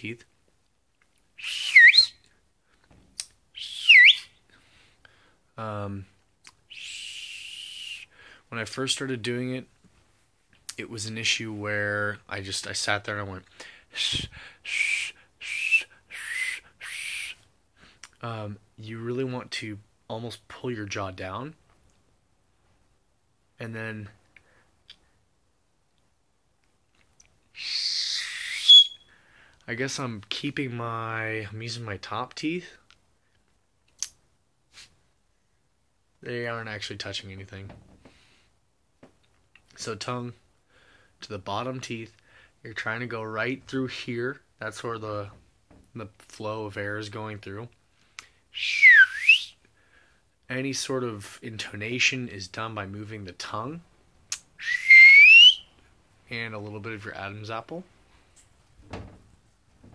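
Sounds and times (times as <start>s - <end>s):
breathy failed whistle hisses: 1.4s - 2.1s, 3.6s - 4.2s, 6.7s - 8.2s, 13.9s - 17.4s, 27.6s - 29.2s, 48.6s - 49.5s, 54.6s - 55.7s
loud swooping whistles: 1.4s - 2.2s, 3.6s - 4.3s, 27.6s - 29.1s, 48.6s - 49.5s, 54.6s - 55.7s
breathy hiss of air: 13.5s - 17.0s.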